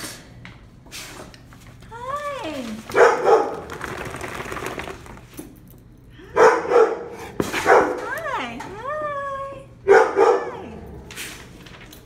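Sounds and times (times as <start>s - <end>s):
dog barking: 3.0s - 3.6s, 6.4s - 8.1s, 9.9s - 10.7s.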